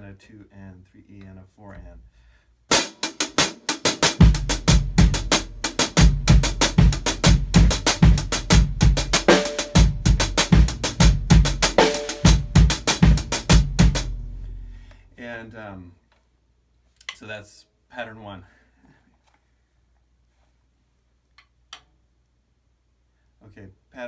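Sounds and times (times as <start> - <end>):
hi-hat pattern: 2.7 - 14.2
kick drum accents: 4.1 - 14.2.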